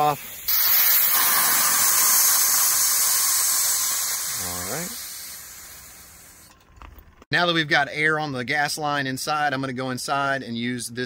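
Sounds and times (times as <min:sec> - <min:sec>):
compressed air hissing from tank: 0:00.0 - 0:06.5.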